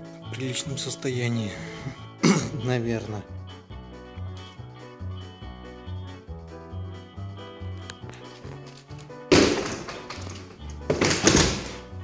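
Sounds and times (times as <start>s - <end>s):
background music with bass line: 0.0s - 12.0s
door thuds with scraping: 9.3s - 11.9s.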